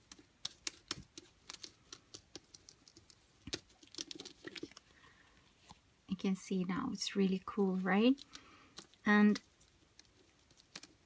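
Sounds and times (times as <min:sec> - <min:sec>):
fingers rubbing cardstock clicks: 0:00.0 - 0:04.8.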